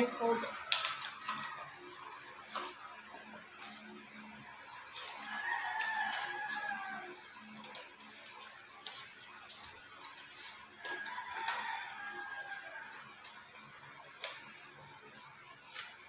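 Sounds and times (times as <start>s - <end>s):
paper rustling: 0.4s - 1.7s, 2.5s - 3.9s, 4.7s - 11.9s, 15.6s - 16.0s
rooster crowing faintly: 5.0s - 7.6s, 10.8s - 13.3s.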